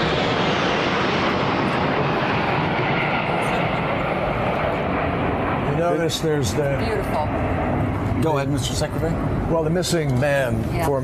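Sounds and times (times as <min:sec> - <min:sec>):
jets flying overhead: 0:00.0 - 0:11.0.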